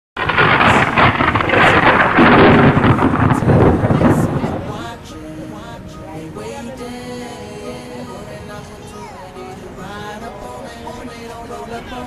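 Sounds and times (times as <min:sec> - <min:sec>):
loud rumbling rush of noise: 0:00.2 - 0:06.4.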